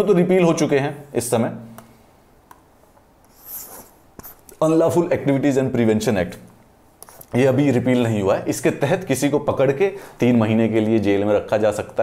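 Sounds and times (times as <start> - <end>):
stylus scratching on tablet: 3.2 - 4.6, 7.0 - 7.4.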